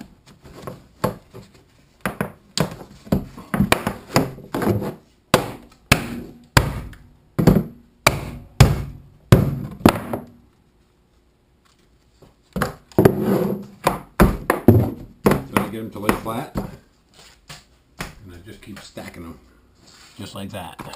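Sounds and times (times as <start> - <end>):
mallet knocking plastic pipe: 5.4 - 10.3.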